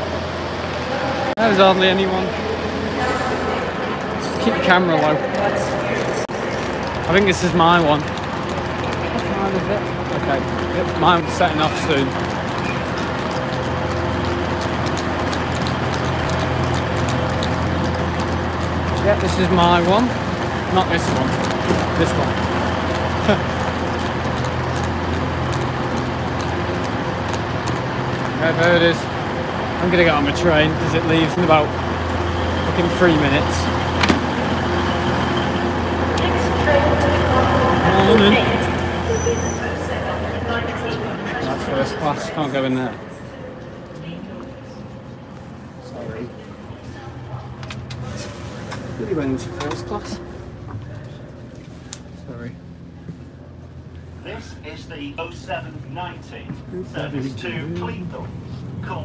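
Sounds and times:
electric train humming: 0.0s - 59.0s
voices: 0.0s - 59.0s
footsteps on paving: 3.9s - 28.4s.

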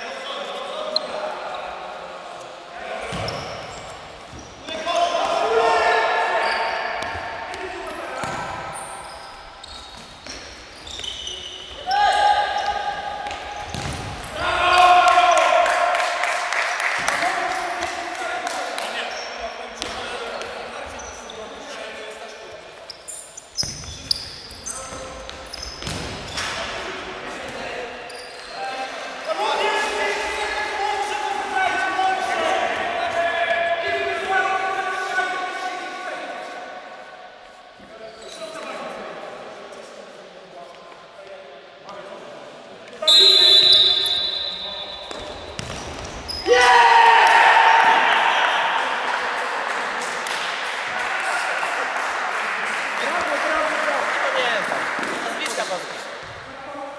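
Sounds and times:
ball kicked and bouncing in hall: 3.0s - 5.5s, 6.9s - 15.2s, 19.7s - 21.0s, 23.6s - 26.7s, 44.9s - 46.6s
loud shouting: 4.9s - 6.9s, 14.3s - 16.0s, 46.4s - 49.1s
high whistle blast: 43.0s - 45.0s.

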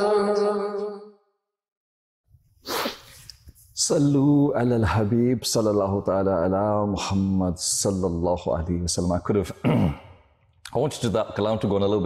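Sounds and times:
man sharp sniff: 2.6s - 3.4s
man speaking: 3.8s - 10.0s, 10.6s - 12.0s.

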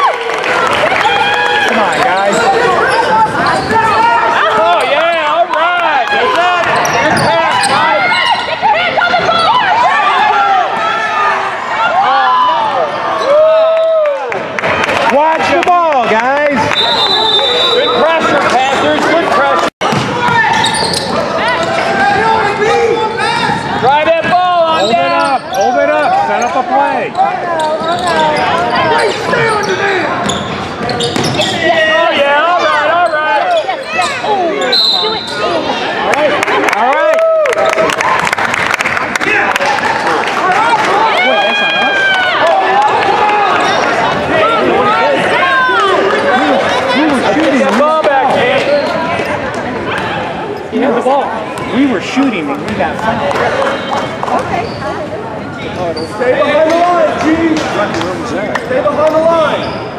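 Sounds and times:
voices in echoing hall: 0.0s - 59.9s
sneakers squeaking: 1.8s - 4.6s, 6.6s - 9.8s, 19.8s - 32.0s, 32.6s - 35.7s, 43.4s - 44.6s, 48.3s - 50.8s, 51.5s - 57.8s, 58.5s - 59.9s
referee's whistle: 16.6s - 18.2s, 34.6s - 35.5s
basketball bouncing: 19.8s - 20.4s, 30.2s - 31.5s.

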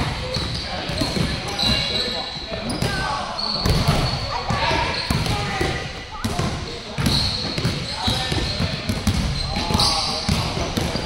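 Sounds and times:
basketballs bouncing on gym floor: 0.0s - 11.0s.

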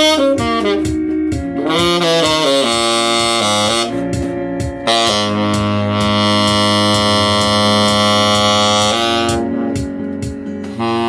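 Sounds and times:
saxophone holding long note: 0.0s - 9.9s, 10.6s - 11.0s.

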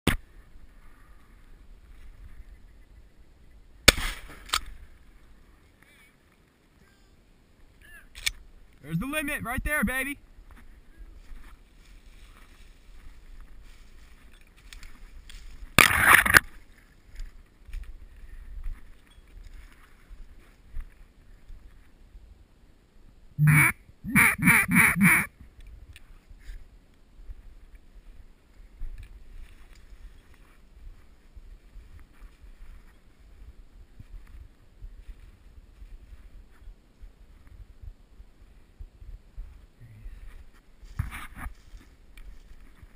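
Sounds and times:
sharp crack: 3.8s - 4.8s, 15.7s - 16.5s
duck quacking: 23.4s - 25.3s.

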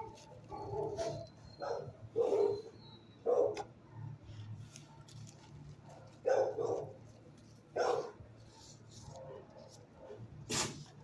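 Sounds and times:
dog barking: 0.0s - 4.1s, 5.9s - 7.0s, 7.7s - 8.2s, 9.1s - 10.3s.

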